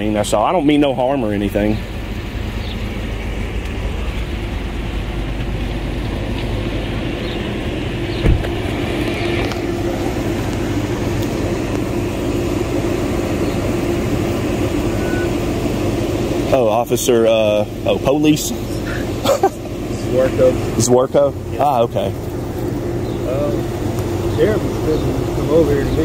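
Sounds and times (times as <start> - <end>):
engine idling: 0.0 - 26.0.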